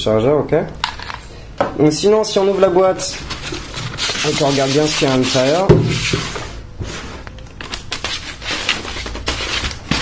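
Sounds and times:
cardboard rustling and scraping: 2.4 - 10.0.

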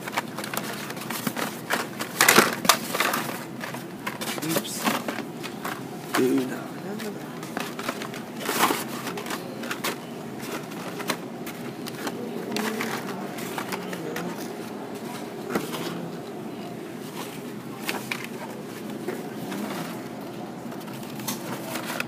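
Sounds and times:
card and plastic packaging crackling: 0.0 - 22.0.

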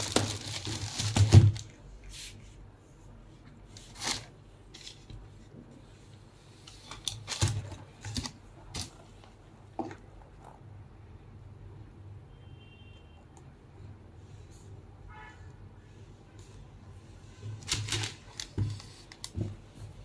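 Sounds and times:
shoebox cardboard and paper rustling: 0.0 - 2.4, 3.7 - 5.2, 6.7 - 9.0, 17.5 - 19.8.

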